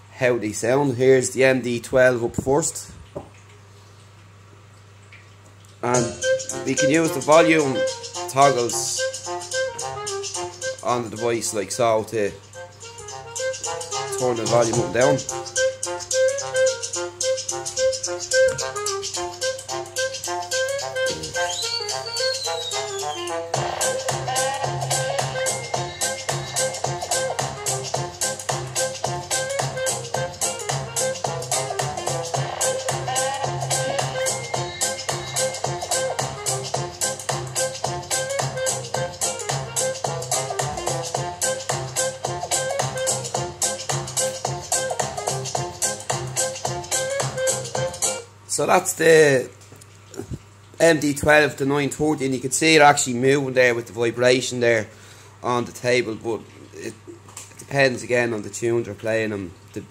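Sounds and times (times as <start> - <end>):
music from portable speaker: 5.9 - 11.5, 12.4 - 48.3.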